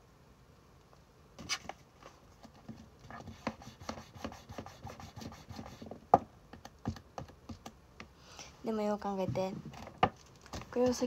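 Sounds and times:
pen scratching on paper: 0:02.6 - 0:05.9.

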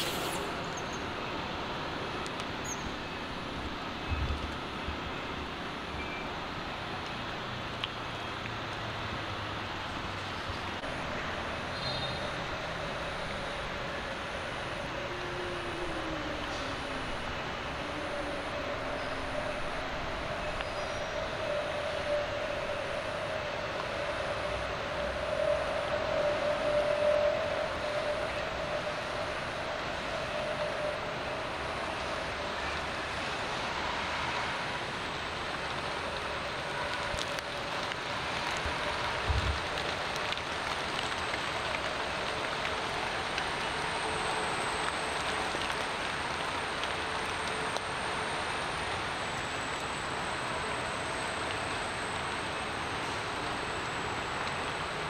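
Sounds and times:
outdoor background noise: 0:00.0 - 0:55.0
faint droning tone: 0:10.8 - 0:34.8.

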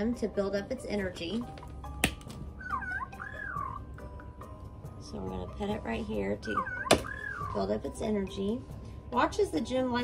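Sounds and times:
toy electronic chirps: 0:02.6 - 0:04.0, 0:06.4 - 0:07.6.

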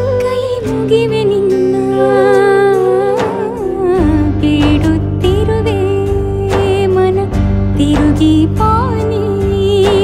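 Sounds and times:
soft instrumental backing: 0:00.0 - 0:10.0
woman singing with vibrato: 0:00.0 - 0:10.0.

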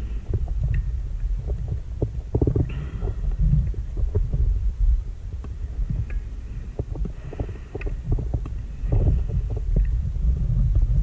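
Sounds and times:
bubbling pops and crackles: 0:00.0 - 0:04.6
underwater low rumble: 0:00.0 - 0:11.0.

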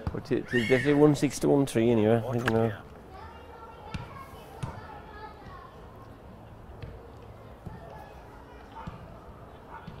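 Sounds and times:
distant voices chattering: 0:02.2 - 0:10.0.

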